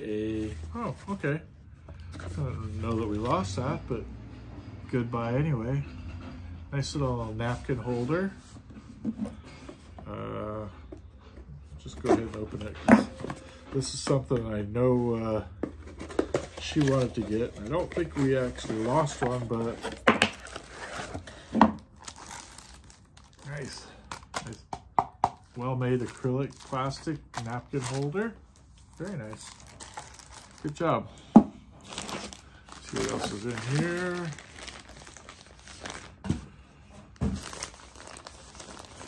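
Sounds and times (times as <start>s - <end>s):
plastic mailer crinkling: 16.1s - 24.6s, 25.5s - 31.0s, 31.8s - 36.4s, 37.2s - 39.0s
plastic bag crinkling: 28.9s - 30.9s, 31.8s - 36.3s, 37.2s - 39.0s.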